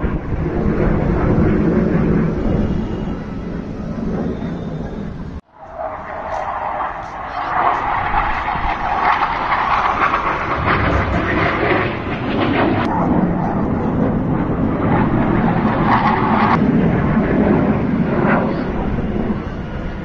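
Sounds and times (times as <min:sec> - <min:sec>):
jet engine rumble: 0:00.0 - 0:20.0.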